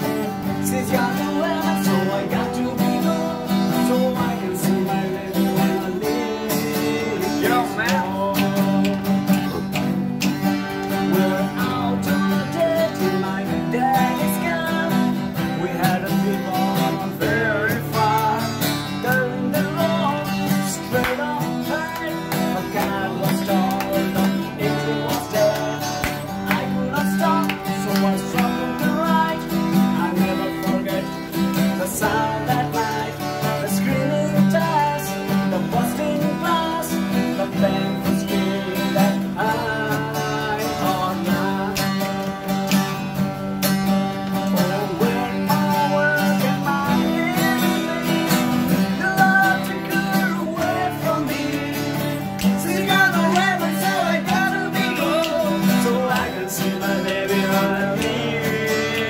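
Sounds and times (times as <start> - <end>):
man singing: 0.0 - 9.8, 10.6 - 42.8, 44.1 - 59.0
acoustic guitar strumming: 0.0 - 59.0.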